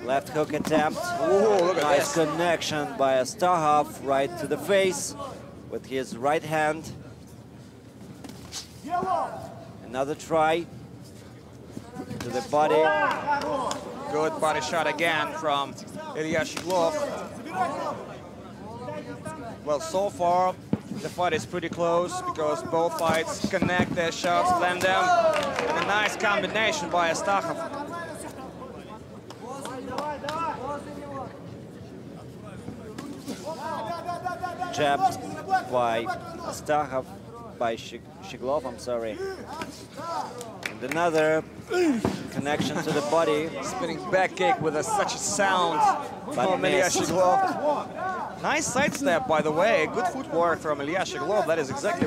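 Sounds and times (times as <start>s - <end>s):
arena crowd noise: 0.0s - 52.0s.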